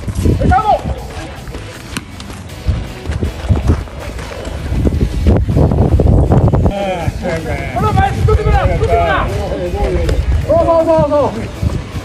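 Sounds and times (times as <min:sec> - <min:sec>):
background music: 0:00.0 - 0:12.0
person shouting call: 0:00.4 - 0:01.2.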